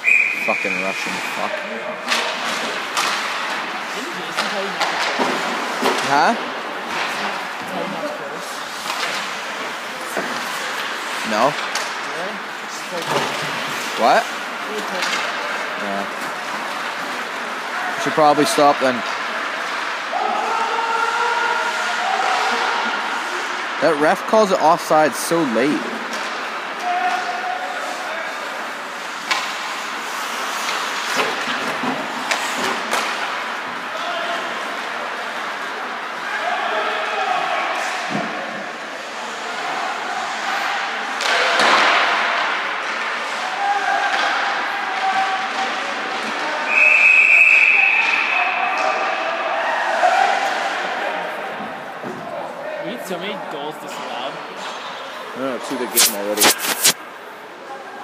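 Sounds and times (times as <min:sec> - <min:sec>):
referee's whistle: 0:00.0 - 0:01.5, 0:46.7 - 0:48.6
puck and sticks hitting boards: 0:02.0 - 0:07.3, 0:08.7 - 0:12.1, 0:25.9 - 0:27.4, 0:29.2 - 0:33.8, 0:41.2 - 0:43.2, 0:44.0 - 0:46.4.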